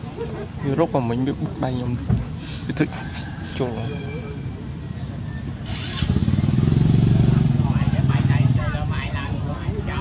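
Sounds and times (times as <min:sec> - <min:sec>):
motor engine passing: 0:05.6 - 0:09.9.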